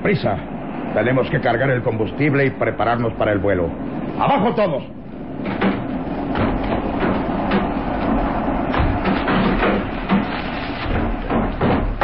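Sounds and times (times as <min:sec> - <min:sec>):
knocks and clatters against a truck: 0:05.4 - 0:12.0.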